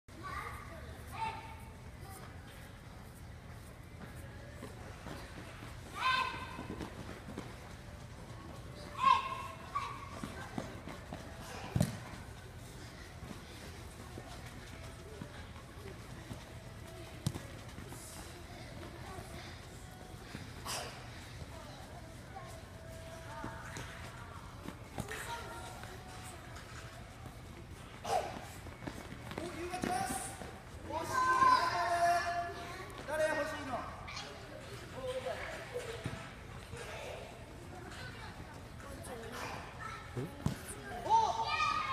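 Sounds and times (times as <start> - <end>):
children's running footsteps on turf: 0.2 - 33.8.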